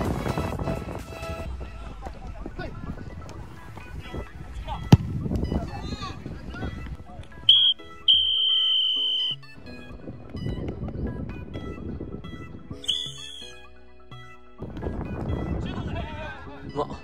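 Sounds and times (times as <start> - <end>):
field noise: 0.0 - 10.0
background music: 0.0 - 17.0
referee's whistle blasts: 7.5 - 9.5, 12.8 - 13.6.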